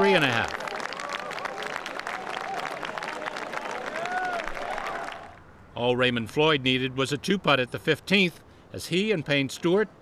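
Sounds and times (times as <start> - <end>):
crowd applauding: 0.0 - 5.4.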